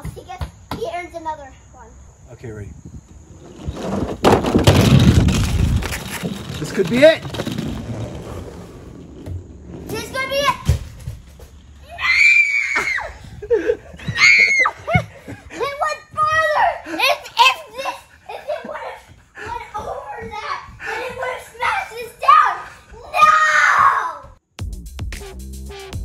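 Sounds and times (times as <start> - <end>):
thump: 3.7 - 11.6
children shrieking and laughing: 11.8 - 24.2.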